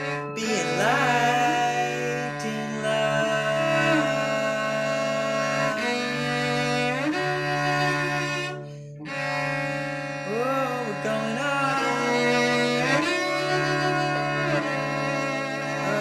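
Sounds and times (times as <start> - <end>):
cello bowed notes: 0.0 - 16.0.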